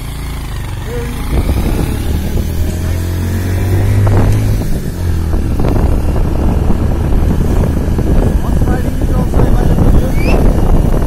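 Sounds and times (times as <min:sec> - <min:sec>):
motorcycle engine pulling away: 0:00.0 - 0:11.0
wind buffeting microphone: 0:00.7 - 0:11.0.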